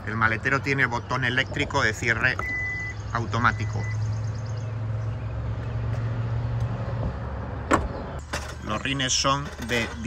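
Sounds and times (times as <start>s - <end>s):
liftgate latching thump: 7.7s - 8.6s.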